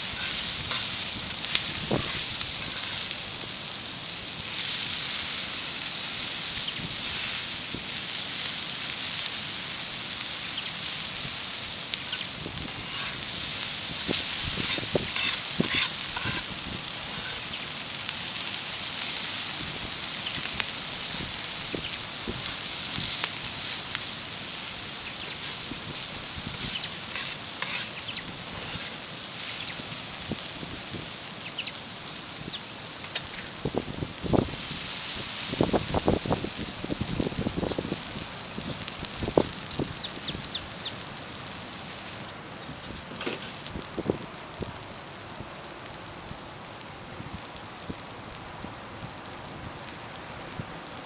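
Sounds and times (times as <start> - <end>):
food sizzling on a griddle: 0.0 - 51.0.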